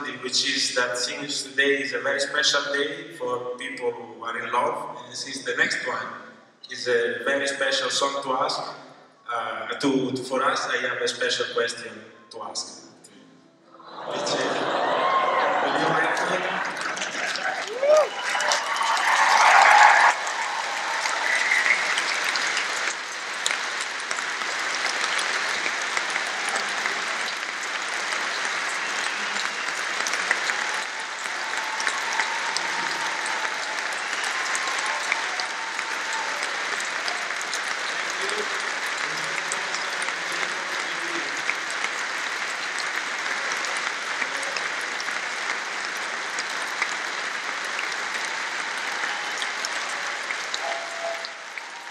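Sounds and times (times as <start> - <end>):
large audience applauding: 13.8 - 51.9.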